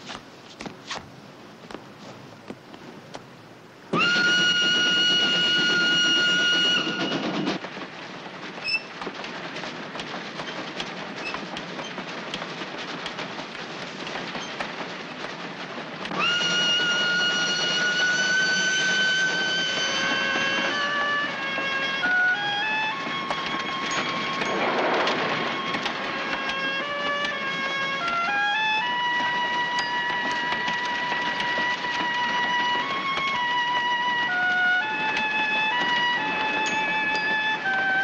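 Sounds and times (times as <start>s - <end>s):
train rattling: 0.0s - 38.0s
wheels clicking over rails: 0.0s - 38.0s
steam locomotive whistle: 3.9s - 7.6s, 16.1s - 38.0s.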